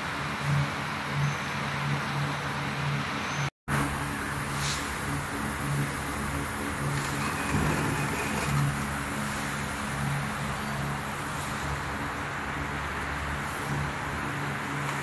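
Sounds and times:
industrial machine hum: 0.0s - 15.0s
pulsing low drone: 3.7s - 14.9s.

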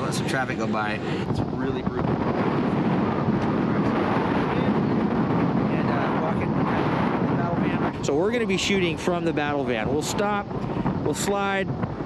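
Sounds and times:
strong wind buffeting microphone: 0.0s - 12.0s.

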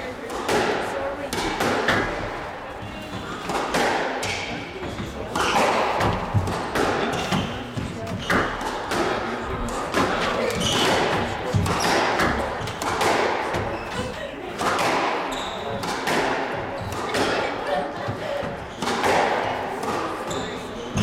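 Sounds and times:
squash ball struck by racket: 0.2s - 21.0s.

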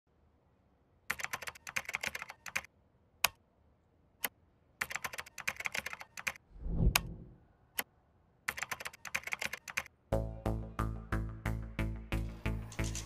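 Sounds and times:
typing on computer keyboard: 1.1s - 3.4s, 4.8s - 6.4s, 8.5s - 9.9s.

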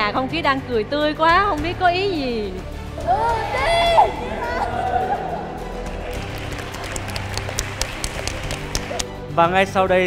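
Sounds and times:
people clapping: 5.7s - 9.2s.

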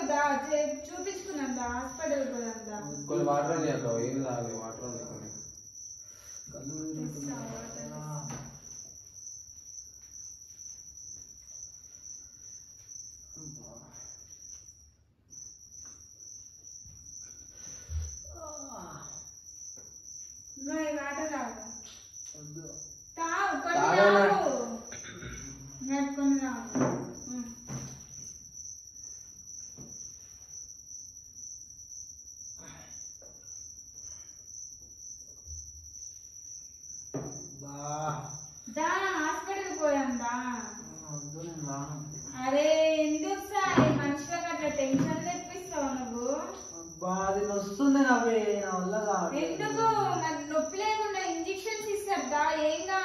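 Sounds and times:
high-pitched insect trill: 0.0s - 53.0s.

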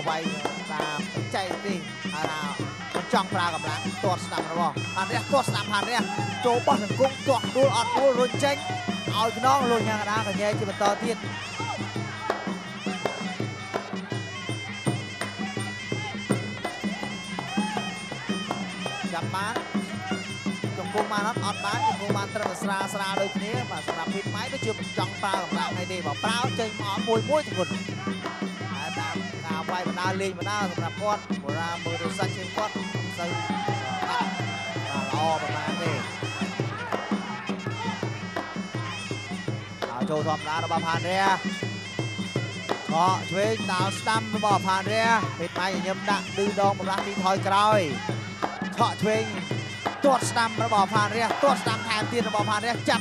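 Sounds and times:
reedy oboe wailing melody: 0.0s - 53.0s
steady drum beat: 0.0s - 53.0s.

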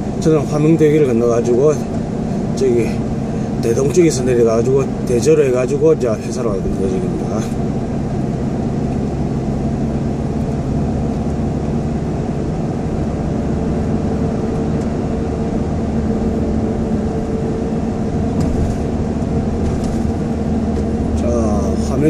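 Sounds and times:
car interior driving drone: 0.0s - 22.0s.

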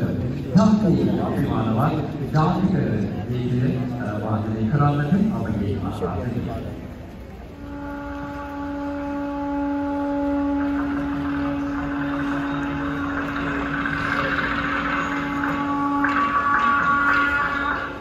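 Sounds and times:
higher tone: 7.6s - 18.0s
steady pitched tone: 7.6s - 18.0s.

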